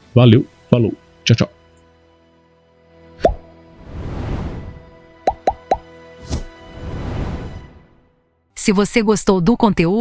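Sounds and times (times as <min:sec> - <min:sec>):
faint background music: 0:00.0 - 0:10.0
whoosh: 0:03.8 - 0:04.8, 0:06.2 - 0:07.7
cartoon pops dropping in pitch: 0:05.3 - 0:05.8.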